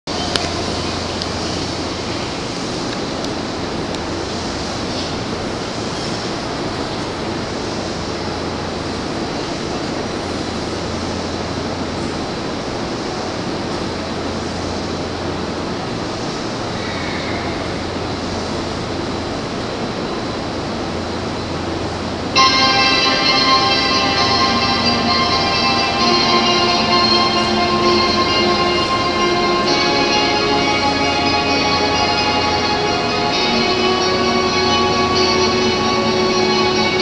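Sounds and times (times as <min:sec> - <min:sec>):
steady hiss: 0:00.1 - 0:37.0
low hum: 0:21.0 - 0:37.0.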